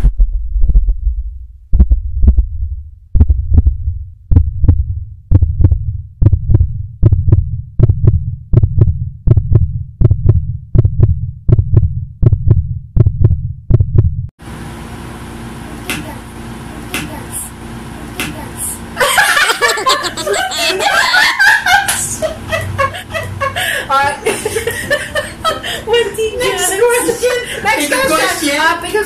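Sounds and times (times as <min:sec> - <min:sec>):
heartbeat thumps: 0:00.0 - 0:14.3.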